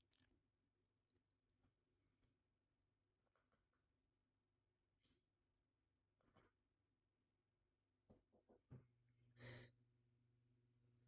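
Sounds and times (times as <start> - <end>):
breathy sigh: 9.4 - 9.8.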